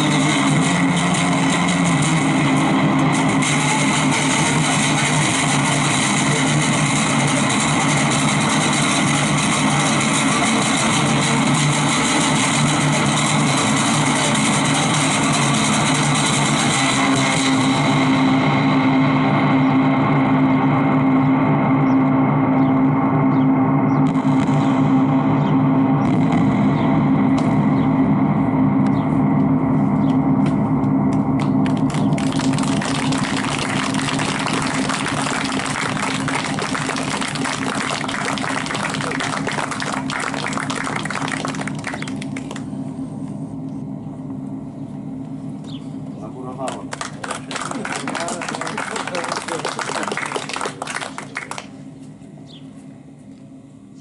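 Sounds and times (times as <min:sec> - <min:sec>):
guitar drones: 0:00.0 - 0:54.0.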